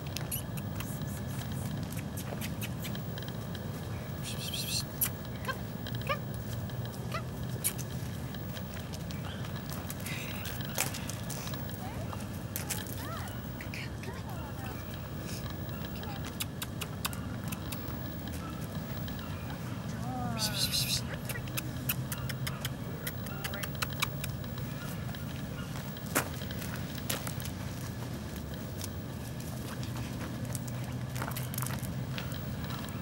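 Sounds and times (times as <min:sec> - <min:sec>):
footsteps on gravel and grass: 0:00.0 - 0:13.5, 0:24.3 - 0:33.0
steady low rumble: 0:00.0 - 0:33.0.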